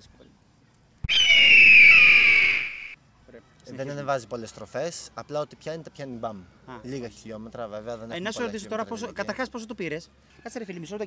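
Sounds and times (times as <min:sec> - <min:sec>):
bird of prey screech: 0:01.1 - 0:03.0.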